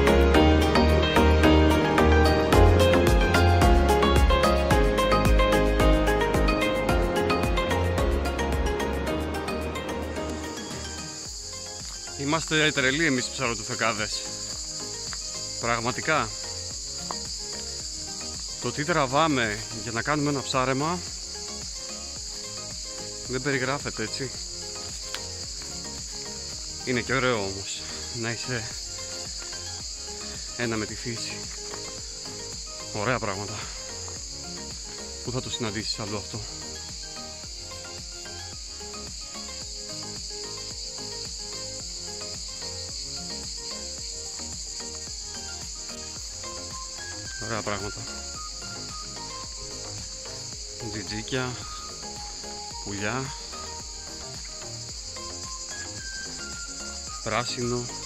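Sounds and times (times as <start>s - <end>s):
cicadas singing: 0.0s - 58.0s
soft background music: 0.0s - 58.0s.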